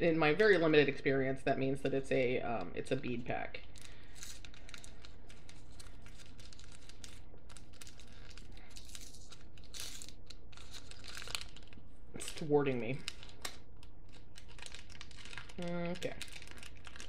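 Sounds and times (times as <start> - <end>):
gift wrapping crinkling and tearing: 3.6 - 17.0.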